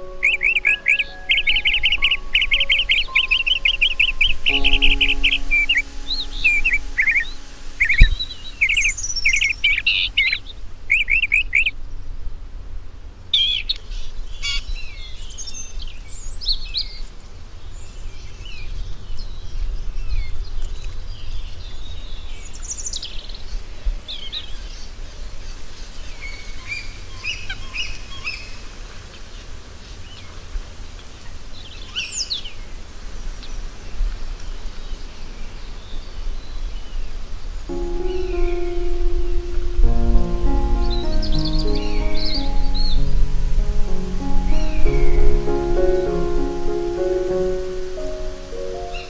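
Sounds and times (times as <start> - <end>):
soft piano music: 0.0 - 10.0, 37.7 - 49.0
low background rush: 37.7 - 49.0.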